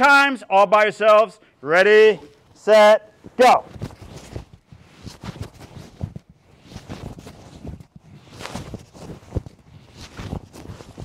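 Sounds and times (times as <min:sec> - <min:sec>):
uniform sleeves swishing: 0:03.1 - 0:11.0.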